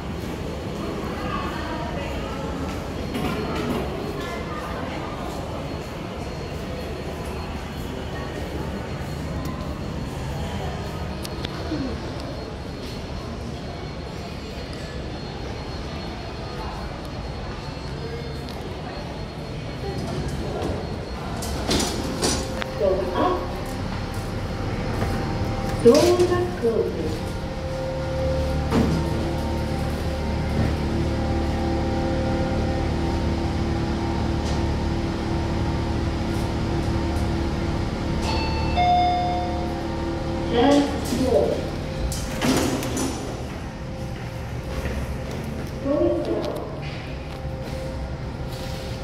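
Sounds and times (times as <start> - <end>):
lift running hum: 0.0 - 49.0
lift arrival chime: 2.6 - 49.0.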